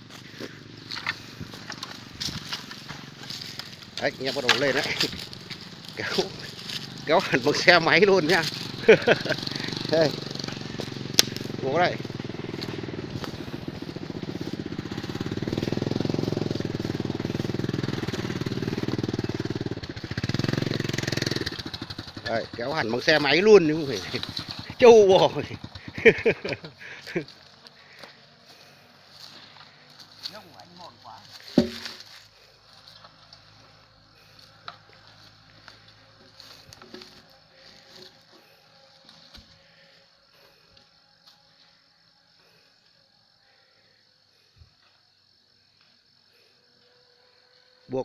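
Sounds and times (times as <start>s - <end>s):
distant motorbike engines: 0.0s - 41.8s
person speaking: 4.0s - 5.2s, 5.9s - 10.2s.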